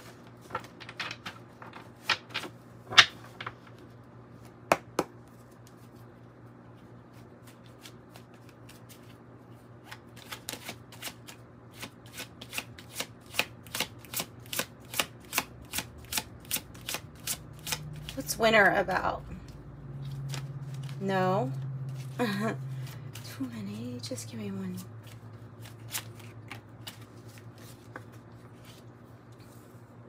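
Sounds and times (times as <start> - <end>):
cards shuffling: 0.0 - 3.9, 7.1 - 18.2, 20.0 - 21.1, 24.8 - 29.7.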